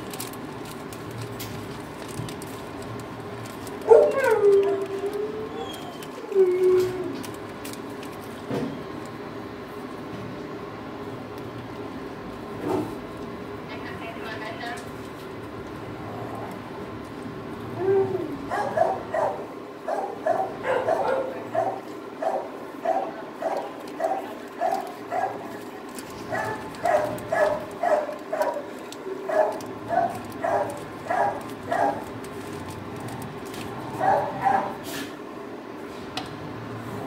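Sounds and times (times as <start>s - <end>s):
dog barking sharply: 18.5s - 25.4s, 26.4s - 28.7s.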